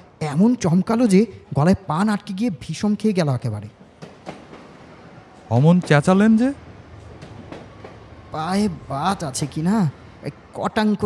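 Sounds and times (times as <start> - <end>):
train rumbling on rails: 2.8 - 11.0.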